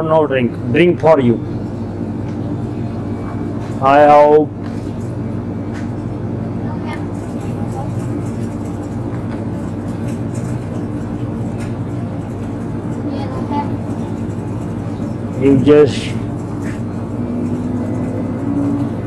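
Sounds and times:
refrigerated display cases humming: 0:00.0 - 0:19.0.

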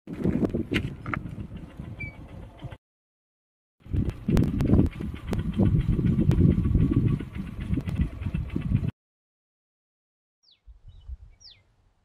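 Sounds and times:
wind buffeting microphone: 0:00.1 - 0:02.8, 0:03.8 - 0:08.9, 0:10.7 - 0:11.6.

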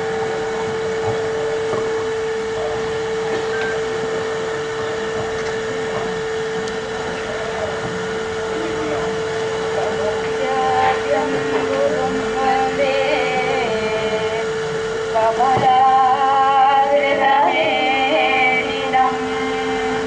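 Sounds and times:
murmur of crowded hall: 0:00.0 - 0:20.0
steady single-pitched hum: 0:00.0 - 0:20.0.

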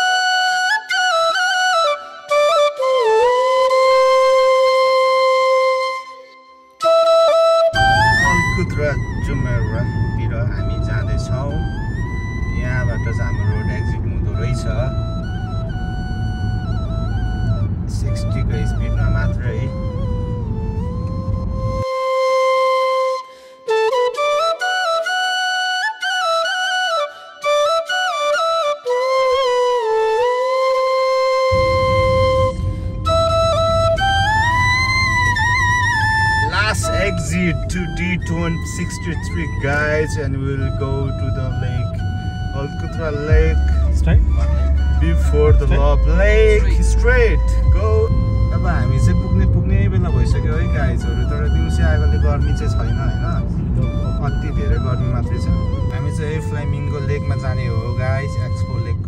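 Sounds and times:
bamboo flute melody: 0:00.0 - 0:59.0
low musical accompaniment: 0:00.0 - 0:59.0.

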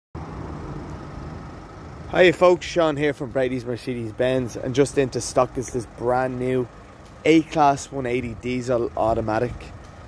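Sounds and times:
vehicle engine humming: 0:00.2 - 0:10.0.

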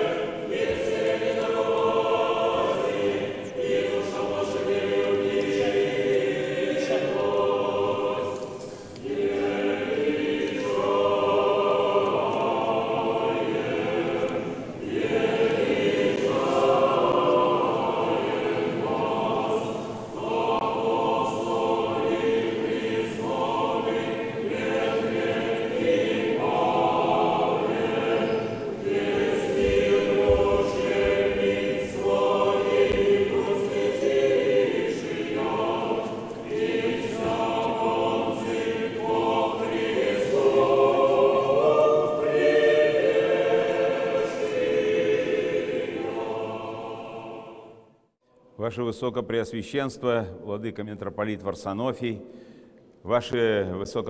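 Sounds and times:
choir chanting unaccompanied: 0:00.0 - 0:48.1.

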